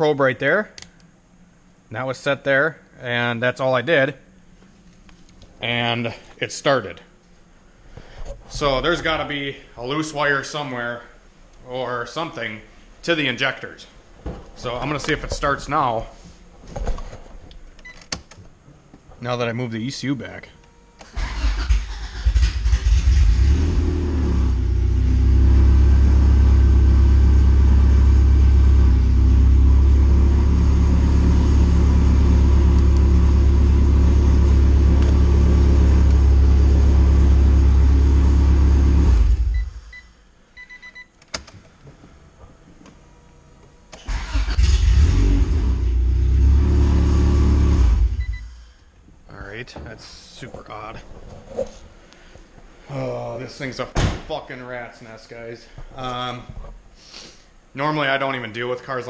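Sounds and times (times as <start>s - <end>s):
car engine starting and idling: 21.0s - 40.0s, 43.4s - 48.8s.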